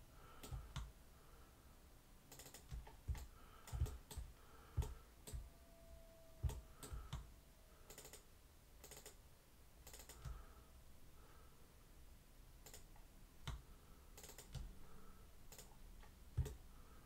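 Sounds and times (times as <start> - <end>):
mouse and keyboard clicks: 2.3 - 5.4, 7.9 - 9.2, 9.8 - 10.4, 12.6 - 13.6, 14.2 - 14.7, 15.5 - 16.6.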